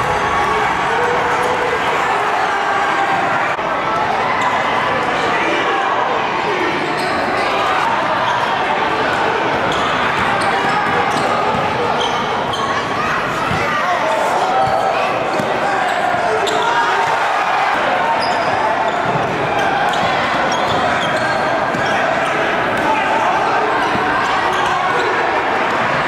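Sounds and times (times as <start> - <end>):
crowd babble: 0.0 - 26.0.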